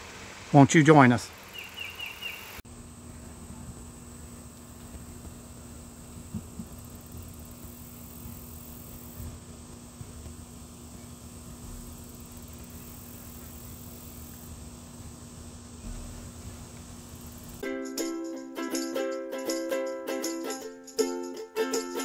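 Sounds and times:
faint hiss: 0:00.0 - 0:17.6
steady low hum: 0:02.6 - 0:17.6.

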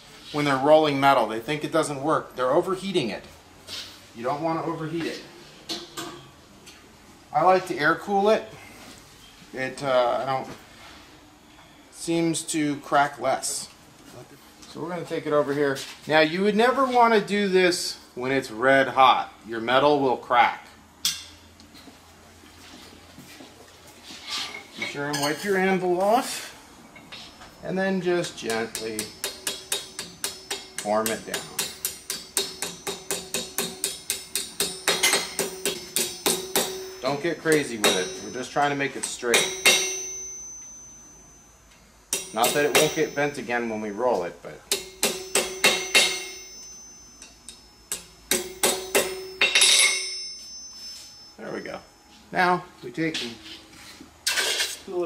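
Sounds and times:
hammer tapping metal on anvil: 0:28.2 - 0:41.2, 0:42.1 - 0:51.4.

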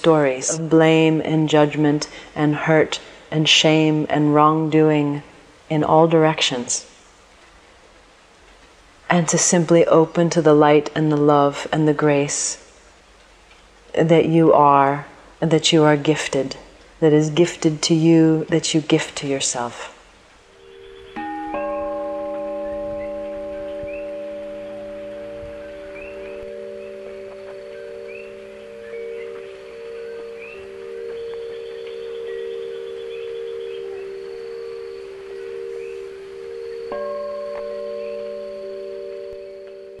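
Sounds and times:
struck bells ringing: 0:20.5 - 0:40.0.

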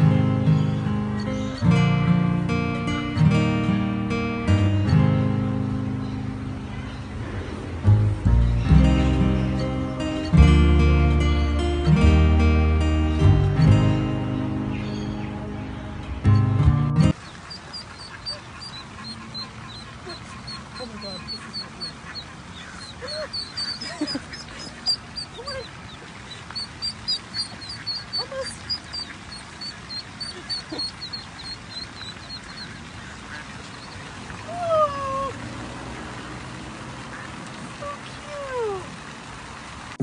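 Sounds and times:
ducklings peeping: 0:00.0 - 0:01.8, 0:04.5 - 0:12.1, 0:13.1 - 0:35.3.

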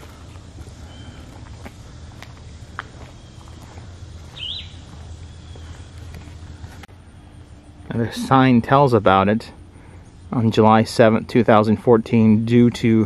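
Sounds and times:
footsteps on concrete: 0:00.0 - 0:06.9, 0:11.8 - 0:13.0
bird chirp: 0:00.0 - 0:08.4
low outdoor hum: 0:00.0 - 0:13.0.

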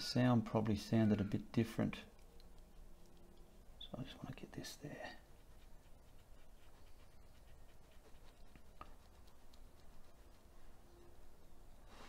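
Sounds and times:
low steady hum: 0:00.0 - 0:12.0
small ticks: 0:02.0 - 0:03.9, 0:05.4 - 0:11.0
paintbrush scratching on canvas: 0:02.2 - 0:12.0.

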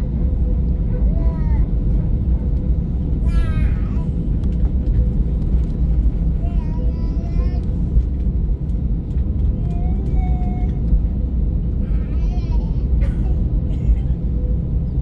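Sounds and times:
aircraft cabin rumble: 0:00.0 - 0:15.0
faint passenger voices: 0:00.1 - 0:08.2, 0:09.1 - 0:11.2, 0:11.8 - 0:15.0.

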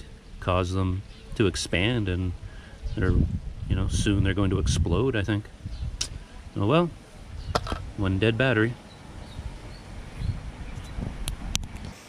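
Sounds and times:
wind buffeting microphone: 0:00.4 - 0:11.9.

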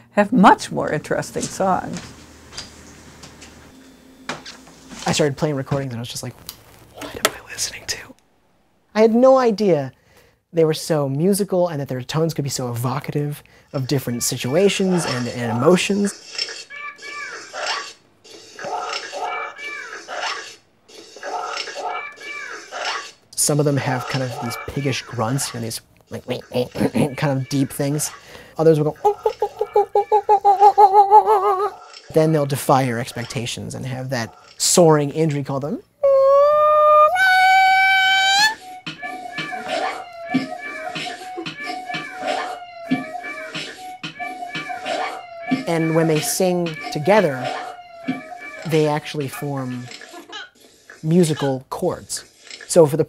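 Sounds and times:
lemur wailing call: 0:36.0 - 0:38.6
lemur wailing calls: 0:36.0 - 0:43.6
beatboxed music track: 0:38.8 - 0:46.7.

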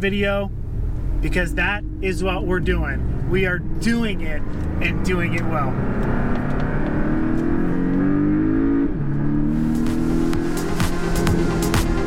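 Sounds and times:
car engine accelerating: 0:00.0 - 0:12.0.

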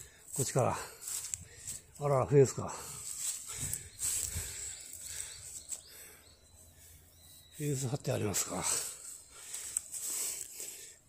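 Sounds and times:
footsteps through dry grass: 0:00.0 - 0:10.8.

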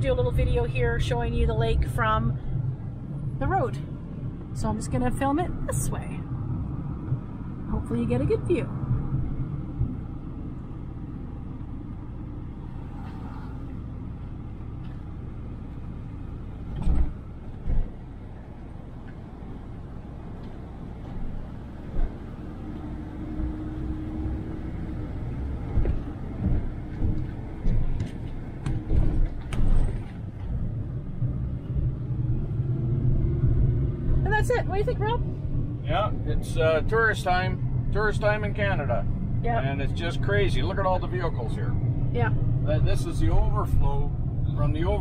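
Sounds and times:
van engine and tyre rumble: 0:00.0 - 0:45.0
thumps and bumps: 0:25.6 - 0:30.6.

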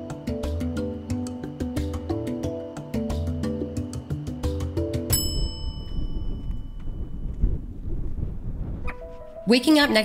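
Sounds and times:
bright chime: 0:05.1 - 0:07.4
wind rumble on microphone: 0:05.2 - 0:10.0.

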